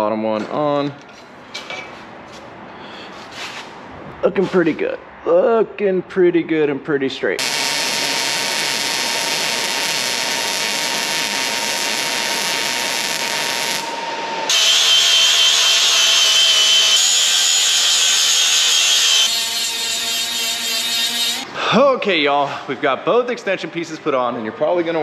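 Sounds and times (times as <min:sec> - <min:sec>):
welder crackling: 0:07.4 - 0:19.4
angle grinder whining: 0:07.4 - 0:21.4
small sanding grinder: 0:14.6 - 0:21.4.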